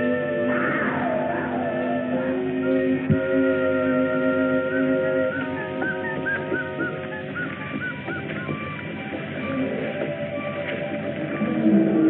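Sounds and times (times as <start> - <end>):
old film soundtrack music: 0.0 - 12.0
whistle-like chirps: 4.6 - 8.8.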